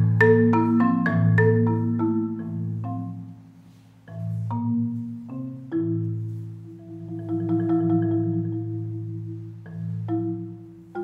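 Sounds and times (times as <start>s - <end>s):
marimba notes: 0.0s - 11.0s.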